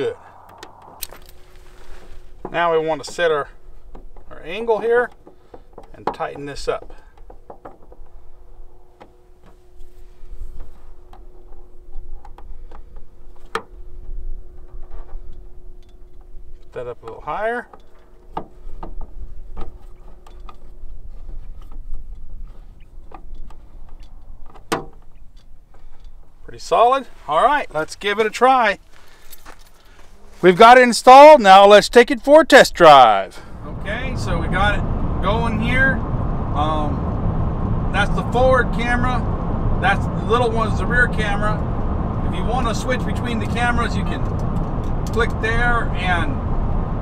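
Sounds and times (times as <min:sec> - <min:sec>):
low background rumble: 0:00.0 - 0:28.2, 0:32.7 - 0:47.0.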